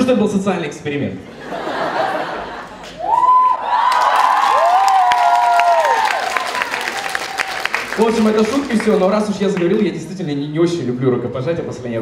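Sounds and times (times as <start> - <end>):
audience applauding: 2.8 - 9.8
audience cheering: 2.9 - 9.2.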